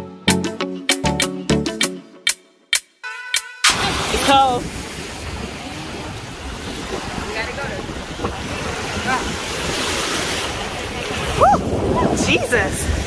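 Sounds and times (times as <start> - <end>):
small waves washing on sand: 3.7 - 13.0
wind buffeting microphone: 3.8 - 13.0.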